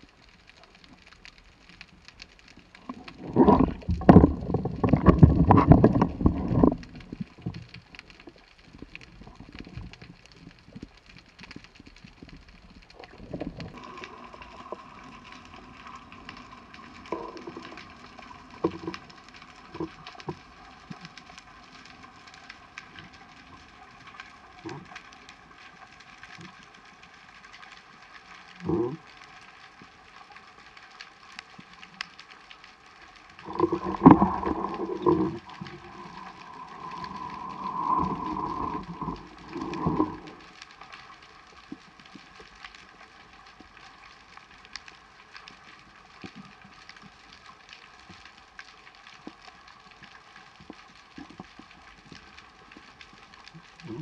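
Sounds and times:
small clicks: 0.0s - 54.0s
faint underwater hiss: 12.6s - 54.0s.

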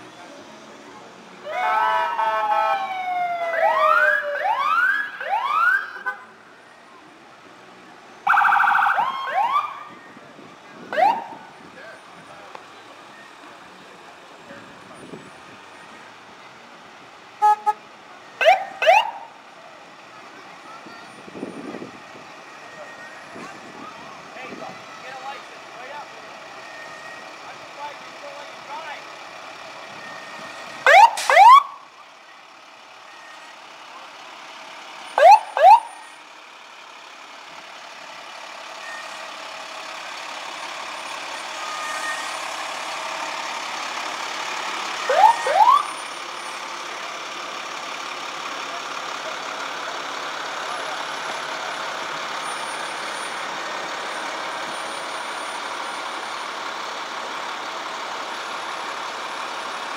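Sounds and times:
truck engine drone: 0.0s - 59.9s
siren whoops: 1.5s - 6.1s, 8.3s - 10.0s, 10.9s - 11.4s, 18.4s - 19.3s, 30.9s - 31.8s, 35.2s - 36.0s, 45.0s - 45.9s.

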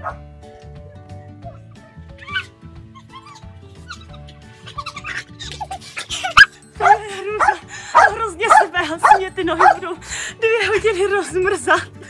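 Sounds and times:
background music: 0.0s - 12.0s
small dog yipping and barking: 2.2s - 5.2s, 6.2s - 9.8s
woman's voice: 6.8s - 12.0s.

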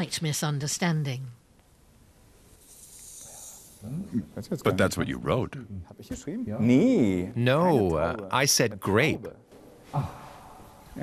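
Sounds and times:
soft breath hiss: 0.4s - 4.9s
man speaking: 3.8s - 9.4s.

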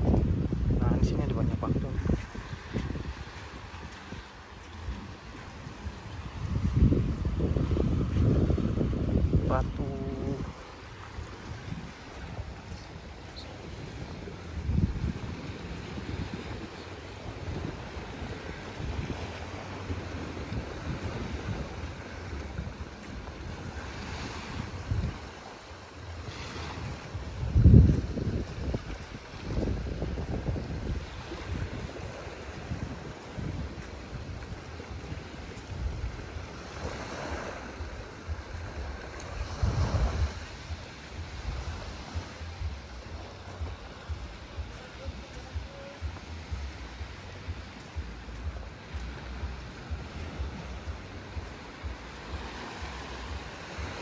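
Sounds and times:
small waves washing on sand: 0.0s - 54.0s
wind rumbling on microphone: 0.0s - 54.0s.

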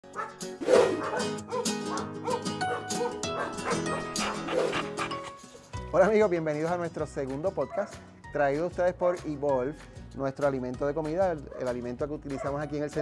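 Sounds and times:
dog barking: 0.2s - 5.2s, 12.4s - 12.6s.

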